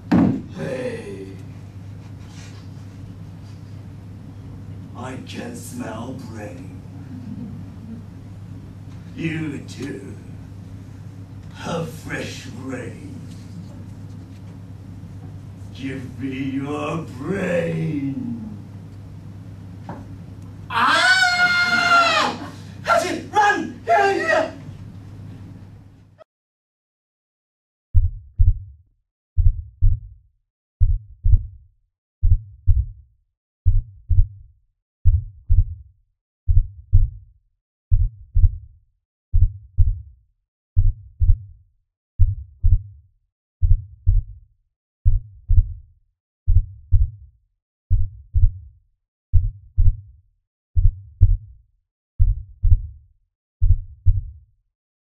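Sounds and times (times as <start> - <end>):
heartbeat thumps: 28.0 - 28.7, 29.4 - 30.2, 30.8 - 31.6, 32.2 - 33.0, 33.7 - 34.4, 35.1 - 35.8, 36.5 - 37.2, 37.9 - 38.6, 39.4 - 40.1, 40.8 - 41.5, 42.2 - 43.0, 43.6 - 44.4, 45.1 - 45.8, 46.5 - 47.2, 47.9 - 48.7, 49.4 - 50.1, 50.8 - 51.5, 52.2 - 53.0, 53.6 - 54.4.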